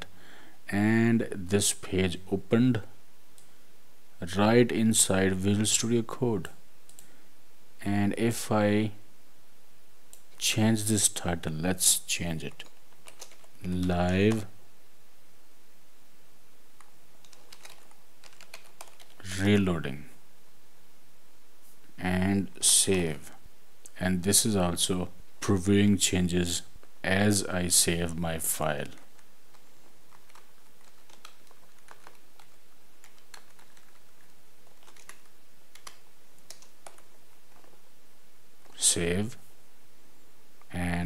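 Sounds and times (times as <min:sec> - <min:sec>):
steady background hiss: 0:00.0 - 0:41.0
computer keyboard typing: 0:12.5 - 0:14.4, 0:16.8 - 0:19.2, 0:28.9 - 0:37.8.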